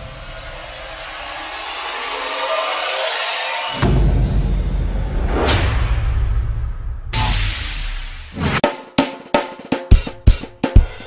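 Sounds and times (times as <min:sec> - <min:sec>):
rushing noise riser: 0:00.0 - 0:08.6.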